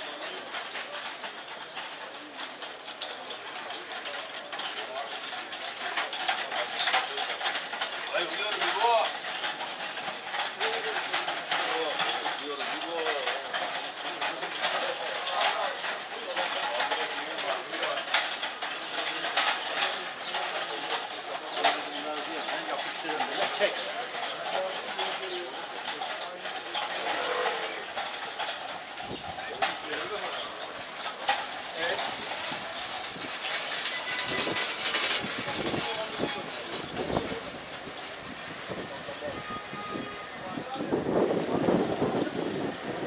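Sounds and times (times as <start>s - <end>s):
clatter of small clicks and knocks: 0.0s - 38.2s
indistinct voices of passers-by: 0.0s - 43.0s.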